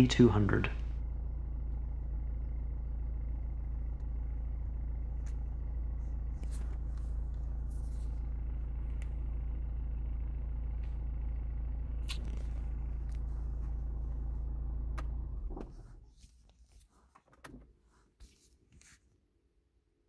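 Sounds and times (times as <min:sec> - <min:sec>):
diesel car engine idling: 0:00.0 - 0:16.1.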